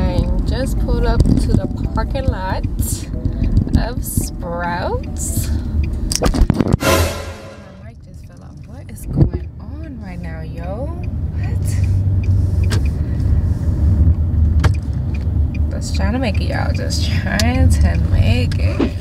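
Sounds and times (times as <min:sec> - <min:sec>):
car engine and road rumble: 0:00.0 - 0:06.8, 0:07.6 - 0:19.0.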